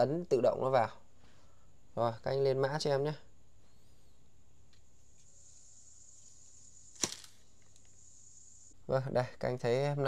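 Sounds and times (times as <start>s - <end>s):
faint high-pitched hiss: 0.0s - 10.0s
sharp click: 7.0s - 8.0s.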